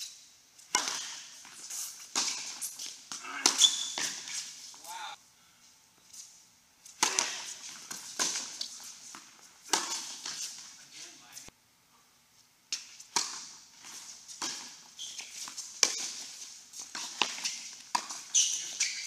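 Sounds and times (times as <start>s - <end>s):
tennis balls struck and bouncing: 0.6s - 4.9s, 6.9s - 10.8s, 12.7s - 19.0s.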